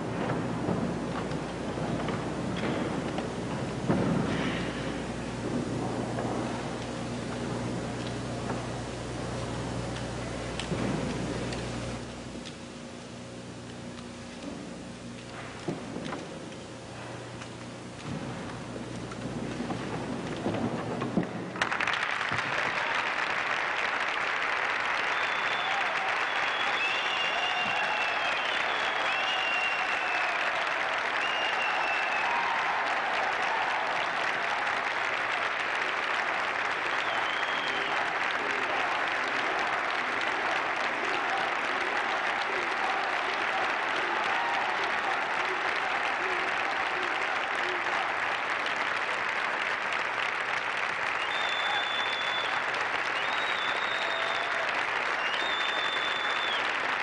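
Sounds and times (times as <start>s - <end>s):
crowd applauding: 0.0s - 14.2s, 15.0s - 57.0s.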